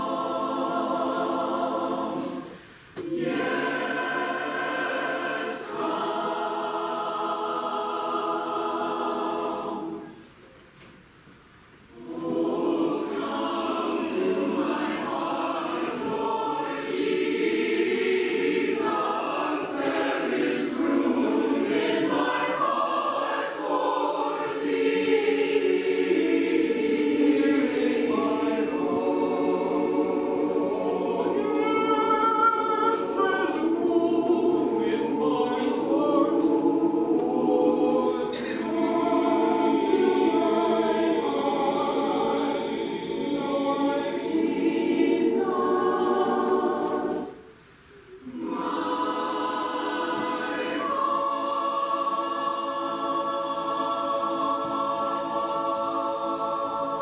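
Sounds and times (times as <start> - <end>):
mixed choir singing: 0.0 - 10.9, 11.9 - 57.0.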